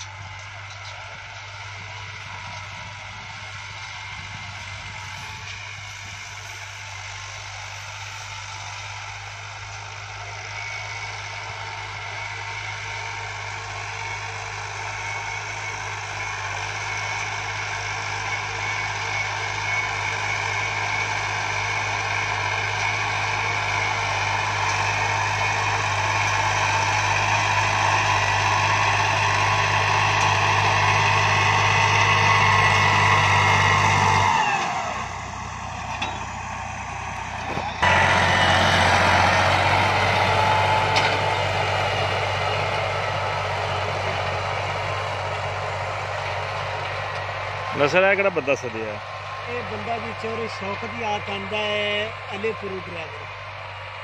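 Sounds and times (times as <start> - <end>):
diesel tractor engine under load: 0.0 - 54.0.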